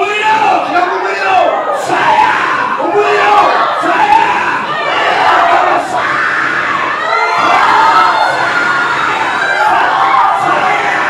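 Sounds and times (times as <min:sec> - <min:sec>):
congregation shouting together: 0:00.0 - 0:11.0.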